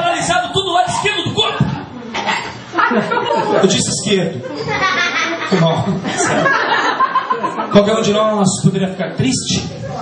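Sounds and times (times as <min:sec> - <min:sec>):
audience laughing: 0:02.8 - 0:07.7.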